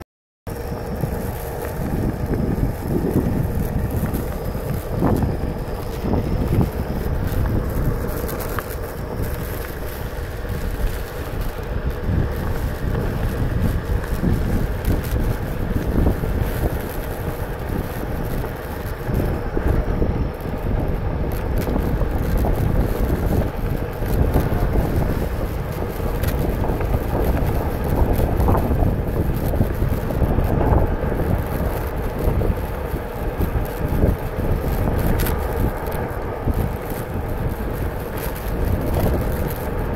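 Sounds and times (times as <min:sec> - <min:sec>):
wind buffeting microphone: 0:00.5 - 0:39.9.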